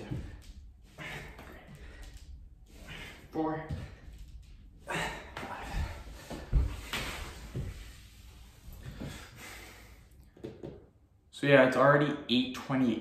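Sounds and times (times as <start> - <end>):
body thumping on floor: 5.4 - 8.0.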